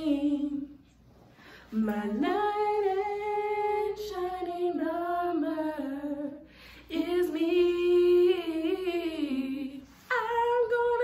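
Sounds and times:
woman singing a cappella: 0:00.0 - 0:00.9, 0:01.6 - 0:11.0
quick breath: 0:06.5 - 0:06.9.

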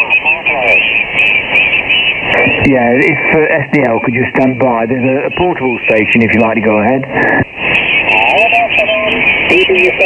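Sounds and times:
garbled radio voice: 0:00.0 - 0:00.9, 0:02.2 - 0:10.0
radio band hiss: 0:00.0 - 0:10.0
weak radio signals: 0:00.0 - 0:10.0.

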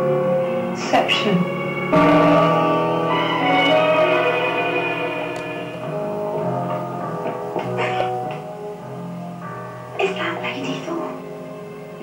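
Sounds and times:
sustained chords: 0:00.0 - 0:09.4.

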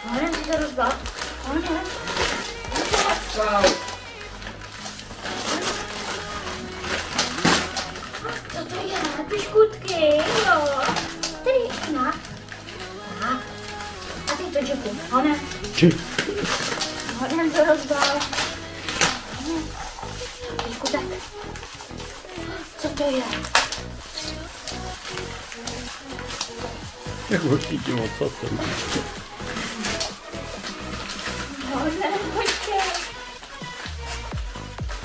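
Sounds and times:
person's voice: 0:00.0 - 0:04.0, 0:08.2 - 0:21.6, 0:27.1 - 0:29.8
background music: 0:00.0 - 0:35.0
dog tearing wrapping paper: 0:00.0 - 0:35.0.

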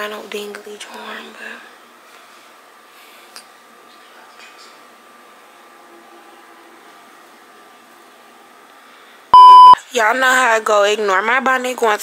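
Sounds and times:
faint room hum: 0:00.0 - 0:12.0
loud electronic beep: 0:09.4 - 0:09.8.

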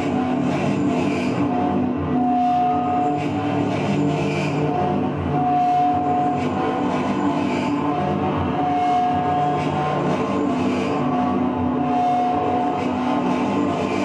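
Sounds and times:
electronic drone music: 0:04.5 - 0:14.0.

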